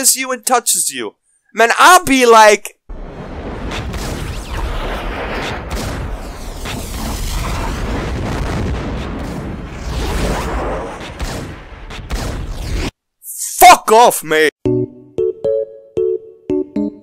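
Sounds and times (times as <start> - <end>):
gunshots and booms: 2.9 - 13.0.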